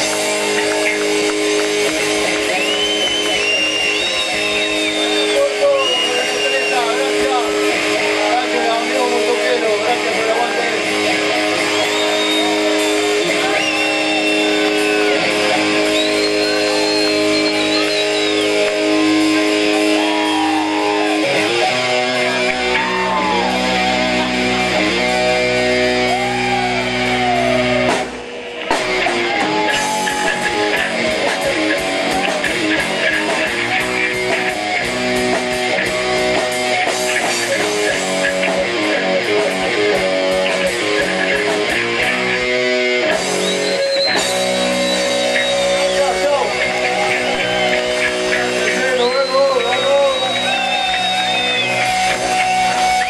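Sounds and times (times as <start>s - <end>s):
rock band playing live: 0.0s - 53.0s.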